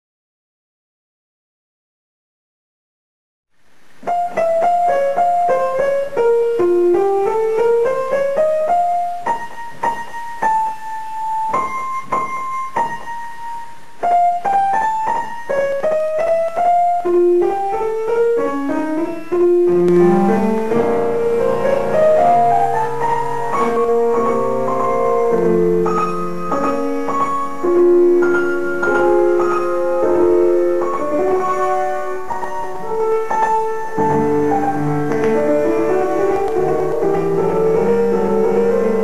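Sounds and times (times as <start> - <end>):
upright piano playing: 4.0 - 39.0.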